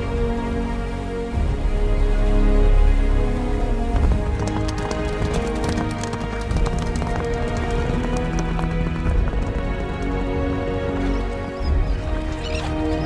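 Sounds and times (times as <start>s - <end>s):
background music: 0.0s - 13.0s
galloping horse hoofbeats: 3.9s - 11.4s.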